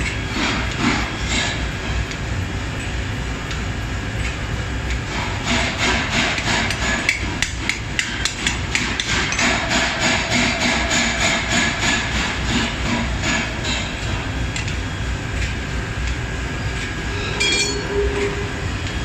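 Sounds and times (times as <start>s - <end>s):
factory machinery rumbling: 0.0s - 19.0s
hammer striking hot steel on anvil: 4.2s - 14.8s, 17.4s - 17.9s.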